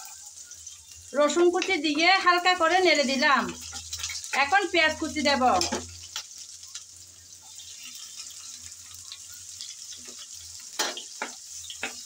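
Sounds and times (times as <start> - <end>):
garlic and onion sizzling in oil: 0.0 - 12.0.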